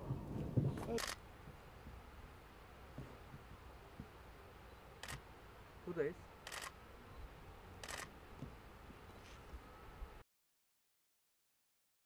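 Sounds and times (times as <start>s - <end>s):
camera shutter clicking: 0.9s - 1.2s, 5.0s - 5.2s, 6.4s - 6.8s, 7.8s - 8.1s.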